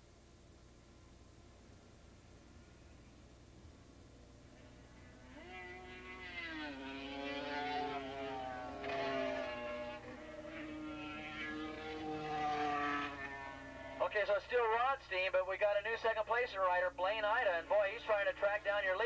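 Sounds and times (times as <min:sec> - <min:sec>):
racing motorcycle engines revving: 0:04.6 - 0:14.2, 0:17.4 - 0:19.0.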